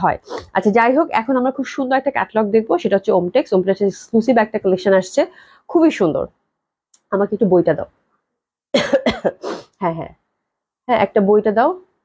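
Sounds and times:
person speaking: 0:00.0 - 0:01.5
person coughing: 0:08.7 - 0:09.7.

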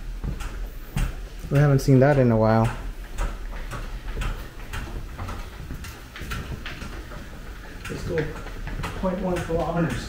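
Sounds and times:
exercise bike ticking: 0:00.0 - 0:10.0.

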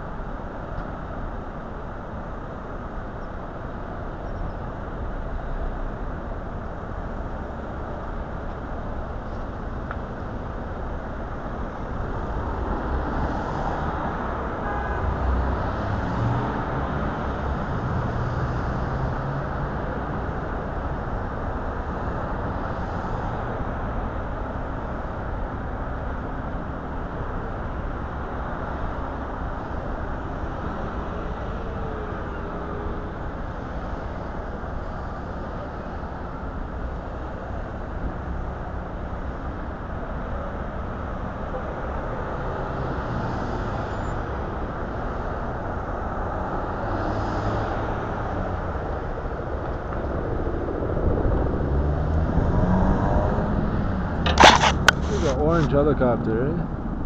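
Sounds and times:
cars passing: 0:11.7 - 0:24.0, 0:41.8 - 0:57.0
vehicle engine: 0:46.5 - 0:56.7.

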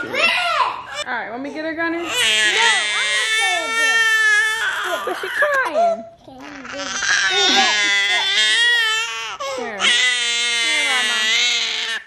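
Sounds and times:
baby crying: 0:02.0 - 0:12.0.

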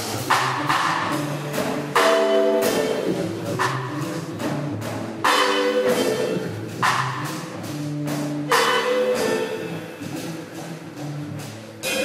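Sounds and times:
double bass: 0:00.0 - 0:12.0
drum kit: 0:00.0 - 0:12.0
stage piano: 0:00.0 - 0:12.0.

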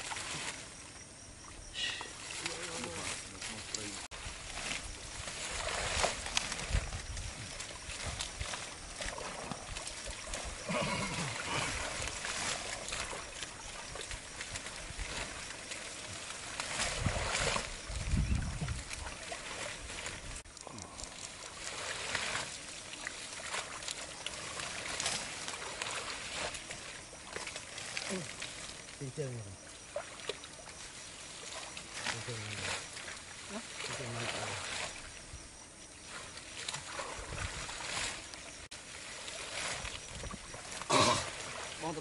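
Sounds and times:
water plants rustling: 0:00.0 - 0:42.0
water sloshing and splashing: 0:00.0 - 0:42.0.

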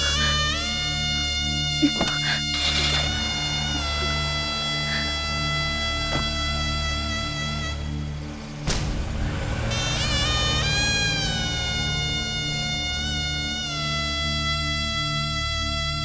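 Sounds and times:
background music score: 0:00.0 - 0:16.0.

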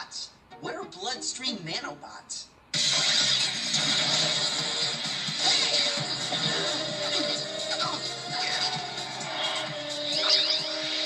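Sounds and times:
cartoon action music: 0:02.8 - 0:11.0
cartoon sound effects: 0:10.1 - 0:11.0.

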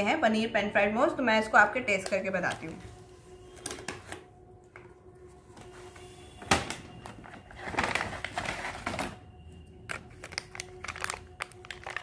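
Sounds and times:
food packaging rustling: 0:07.0 - 0:09.2, 0:09.9 - 0:12.0.

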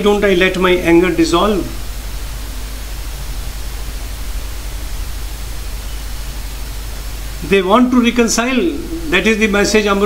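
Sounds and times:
low hum: 0:00.0 - 0:10.0
steady hiss: 0:00.0 - 0:10.0.

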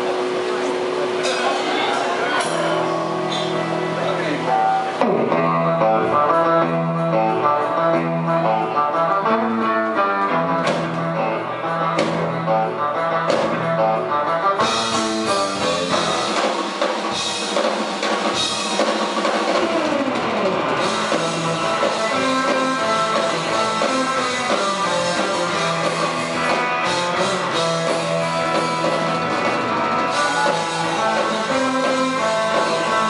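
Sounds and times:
electric guitar picking runs: 0:00.0 - 0:33.0
drum kit and cymbals: 0:14.6 - 0:33.0.

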